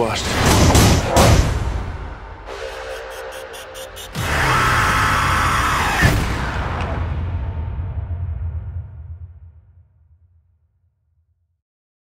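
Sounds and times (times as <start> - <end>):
sharp hit: 0.2 - 9.8.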